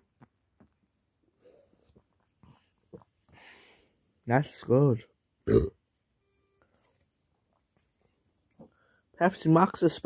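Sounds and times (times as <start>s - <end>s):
soft breath: 1.4s - 4.2s, 8.6s - 9.2s
person gulping a drink: 5.5s - 5.8s.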